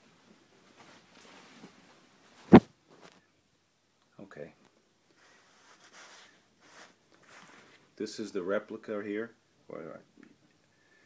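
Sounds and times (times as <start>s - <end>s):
faint rustling: 0.2s - 3.3s, 5.1s - 7.9s.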